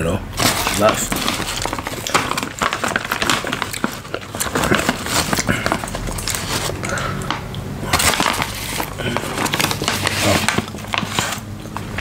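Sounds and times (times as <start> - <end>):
plastic bag crinkling: 0.3 - 12.0.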